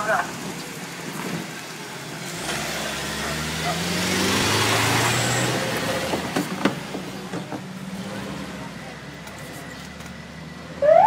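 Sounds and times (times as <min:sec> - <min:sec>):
vehicle engines driving away: 0:00.0 - 0:11.0
siren wailing: 0:10.7 - 0:11.0.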